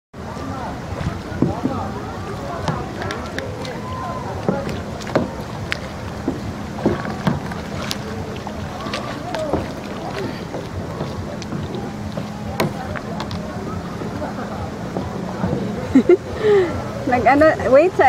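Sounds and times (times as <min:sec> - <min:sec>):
water and wind noise: 0:00.1 - 0:18.0
paddle splashing in water: 0:00.2 - 0:17.2
water dripping: 0:01.2 - 0:16.1.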